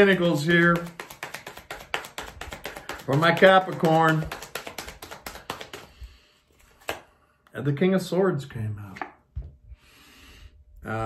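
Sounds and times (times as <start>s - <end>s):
cards being shuffled: 0.0s - 7.1s.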